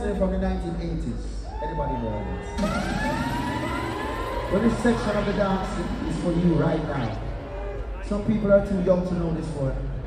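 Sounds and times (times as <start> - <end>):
long pitched wail rising: 2.2 - 5.4.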